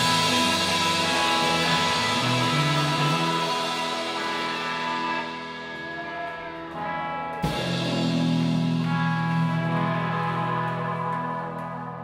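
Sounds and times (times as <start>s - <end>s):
live band with ringing notes: 0.0s - 12.0s.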